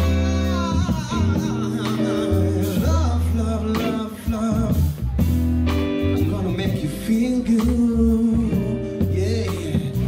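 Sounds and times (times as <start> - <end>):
funk band playing: 0.0 - 10.0.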